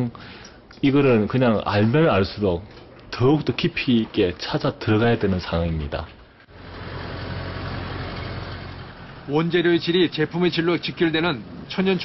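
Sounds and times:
truck engine running: 6.5s - 11.4s.

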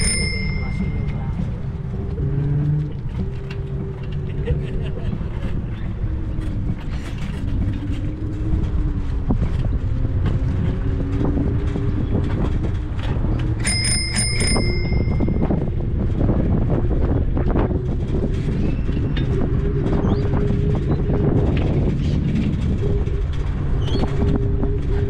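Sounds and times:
bicycle bell ringing: 0.0s - 1.4s, 13.6s - 15.6s
low rumble of wind and riding: 0.0s - 25.0s.

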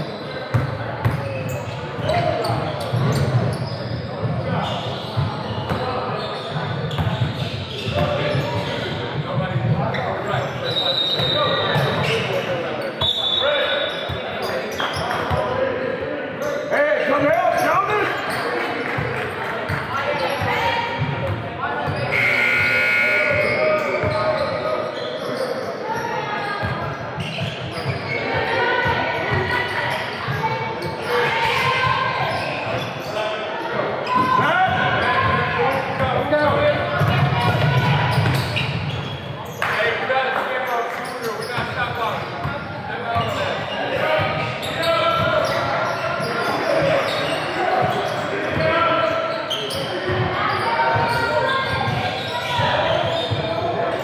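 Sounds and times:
shoe squeaks: 0.0s - 8.9s, 9.9s - 15.4s, 21.8s - 28.5s, 29.2s - 36.1s, 37.0s - 39.8s, 40.9s - 42.3s, 43.1s - 54.0s.

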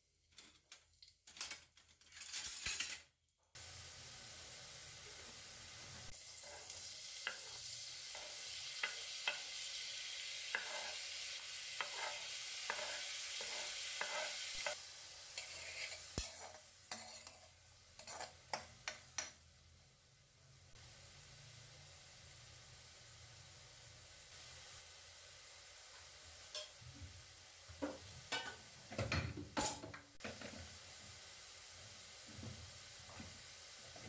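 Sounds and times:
spices sizzling in hot oil: 0.1s - 34.0s
spatula tapping pan: 7.2s - 9.5s, 10.5s - 11.0s, 11.8s - 14.8s, 18.0s - 19.4s.

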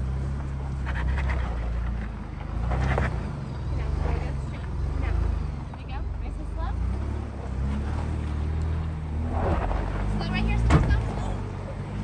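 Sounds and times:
engine running low hum: 0.0s - 12.0s.

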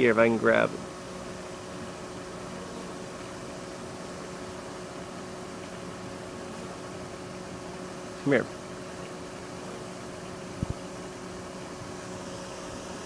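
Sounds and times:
bees humming: 0.9s - 13.0s.

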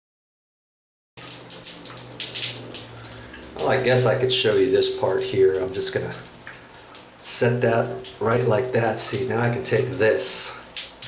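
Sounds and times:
low steady hum: 1.2s - 11.0s
shower water running and splashing: 1.2s - 11.0s.

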